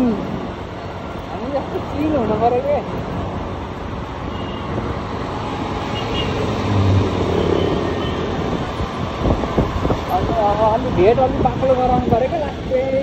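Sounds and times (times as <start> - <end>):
scooter engine and road noise: 0.0 - 13.0
wind on microphone: 8.2 - 12.3.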